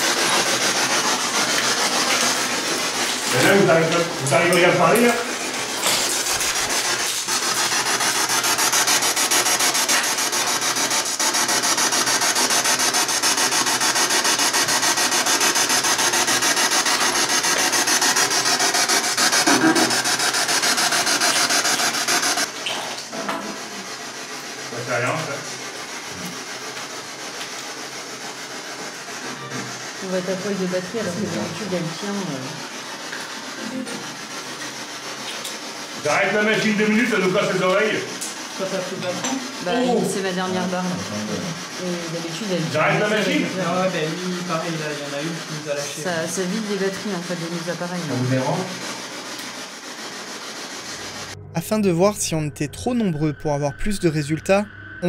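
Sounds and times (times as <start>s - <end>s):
harsh wavering static: 0.0s - 22.6s, 23.6s - 55.0s.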